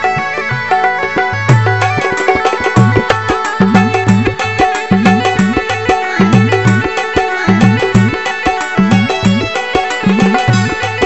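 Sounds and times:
hand drum rhythm: 0.0s - 11.0s
sustained melodic notes: 0.0s - 11.0s.

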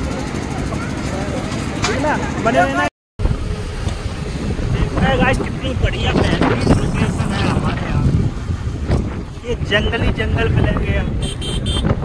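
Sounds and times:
steady low rumble: 3.2s - 11.1s
wind buffeting microphone: 3.2s - 12.0s.

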